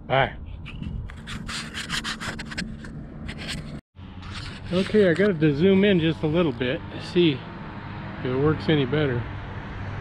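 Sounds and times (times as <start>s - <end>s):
rubbing on camera microphone: 0.6s - 5.6s.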